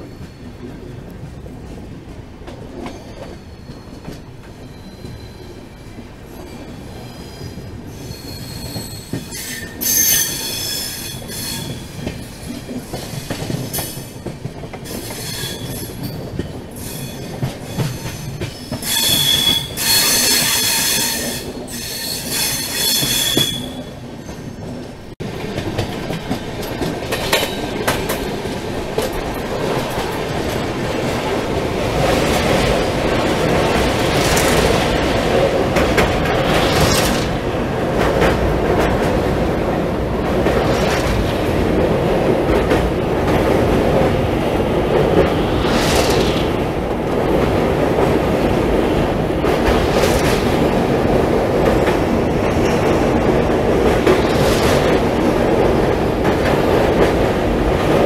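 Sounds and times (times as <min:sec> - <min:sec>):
train wheels squealing on rails: 0:00.0 - 0:00.8, 0:02.8 - 0:24.8
train wheels rumbling and clacking: 0:00.0 - 0:58.0.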